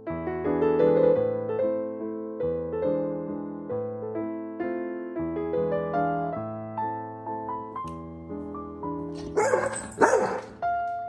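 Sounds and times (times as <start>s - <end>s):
soft piano music: 0.0s - 11.0s
dog barking: 9.2s - 10.6s.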